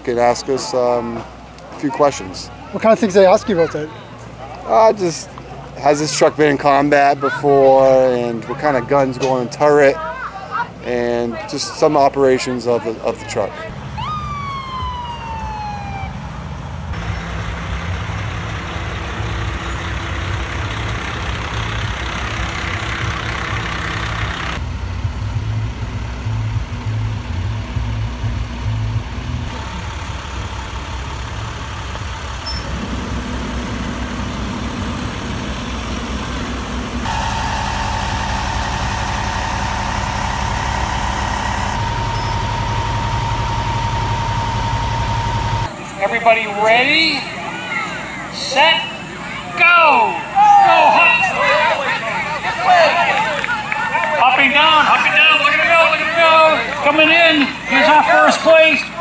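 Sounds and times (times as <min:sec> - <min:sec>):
diesel truck engines idling: 0:00.0 - 0:46.0
steady high tone: 0:13.7 - 0:17.4, 0:37.1 - 0:45.7.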